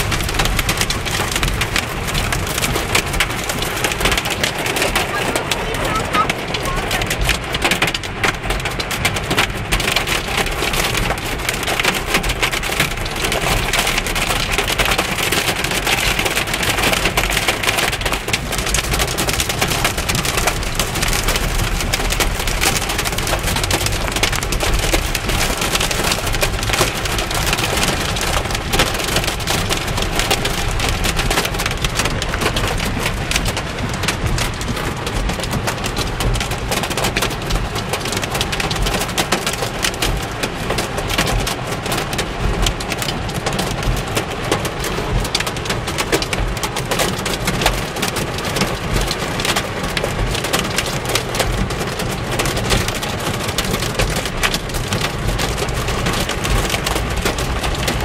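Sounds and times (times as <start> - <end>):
hail clattering on car roof: 0.0 - 58.0
heavy rain on car: 0.0 - 58.0.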